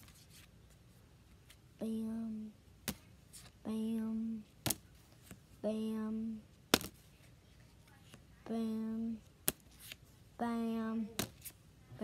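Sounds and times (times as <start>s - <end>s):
child saying bam: 1.8s - 2.6s, 5.6s - 6.4s, 8.4s - 9.2s, 10.4s - 11.4s.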